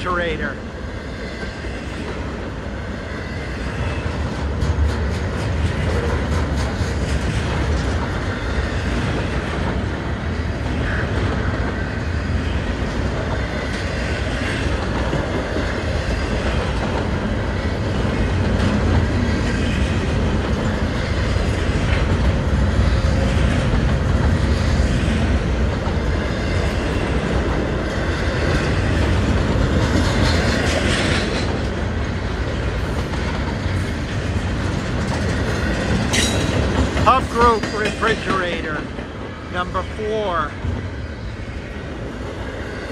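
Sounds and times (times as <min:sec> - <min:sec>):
freight train rolling past: 0:00.0 - 0:42.9.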